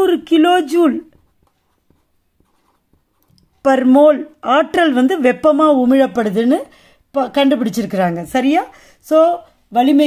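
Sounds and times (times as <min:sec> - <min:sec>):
marker pen writing on paper: 0:00.0 - 0:04.0.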